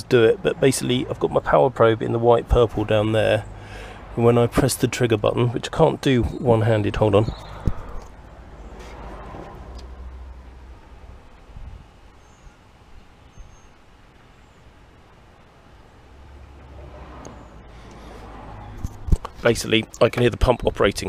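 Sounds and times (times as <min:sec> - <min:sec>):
fuel pump humming: 0:00.0 - 0:20.2.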